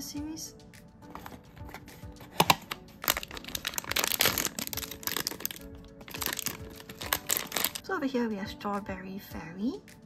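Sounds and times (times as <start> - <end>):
foil bag crinkling: 1.2 - 7.8
cardboard box snapping open: 2.2 - 5.3.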